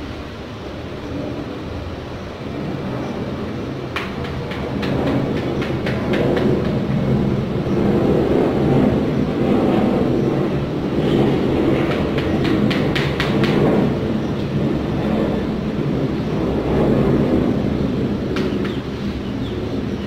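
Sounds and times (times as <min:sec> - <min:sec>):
steady low rumble: 0:00.0 - 0:20.0.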